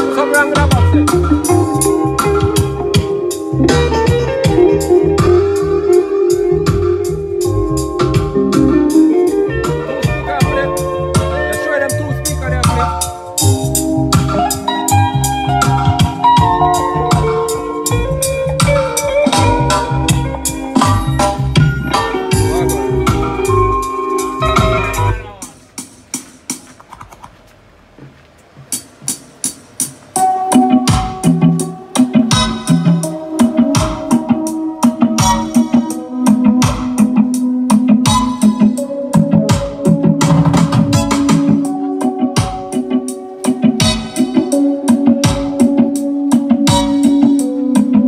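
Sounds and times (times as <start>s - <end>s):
loud music with drums bass guitar: 0.0s - 26.6s, 28.7s - 48.0s.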